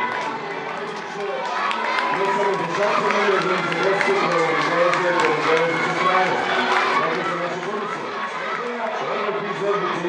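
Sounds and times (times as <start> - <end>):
crowd hubbub: 0.0 - 10.0
children chattering and calling: 1.2 - 10.0.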